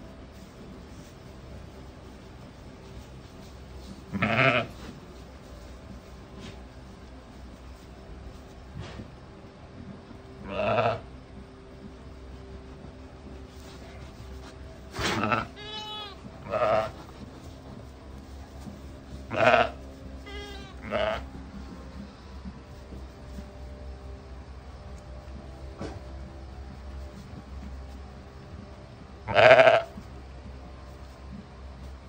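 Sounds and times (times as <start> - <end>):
sheep bleating: 4.1 - 4.8, 10.4 - 11.0, 15.1 - 17.0, 19.3 - 21.3, 29.2 - 29.9.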